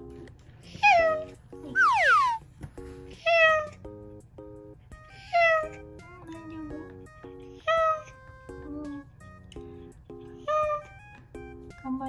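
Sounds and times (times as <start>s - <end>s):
background music: 0.0s - 12.0s
cat meowing: 3.2s - 3.8s, 5.2s - 6.5s, 7.6s - 8.2s.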